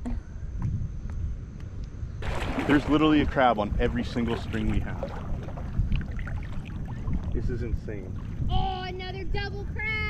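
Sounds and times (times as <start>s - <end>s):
wind rumbling on microphone: 0.0s - 10.0s
choppy water lapping: 2.2s - 9.3s.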